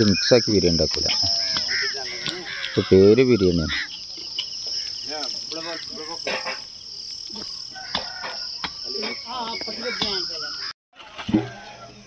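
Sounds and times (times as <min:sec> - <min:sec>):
crickets chirring: 0:00.0 - 0:10.7.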